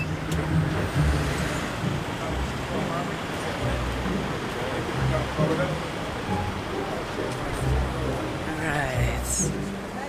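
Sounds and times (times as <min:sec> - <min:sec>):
traffic engine rumble: 0:00.0 - 0:10.0
faint voices: 0:01.6 - 0:10.0.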